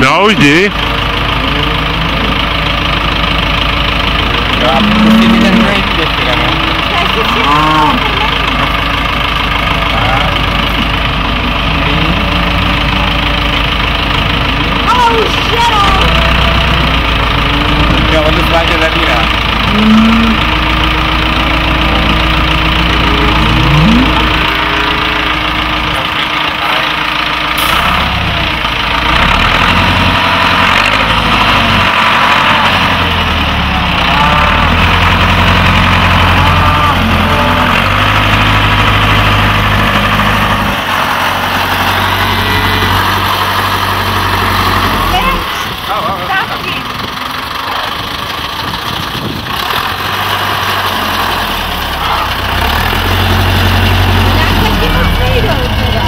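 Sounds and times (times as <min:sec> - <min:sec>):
tractor engine revving: 0:00.0 - 0:56.0.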